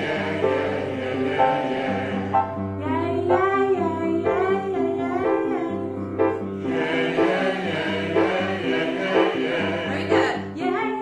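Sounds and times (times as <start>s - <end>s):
audience singing along: 0.0s - 2.8s, 6.2s - 10.5s
grand piano accompaniment: 0.0s - 11.0s
woman singing: 2.8s - 6.5s, 9.9s - 11.0s.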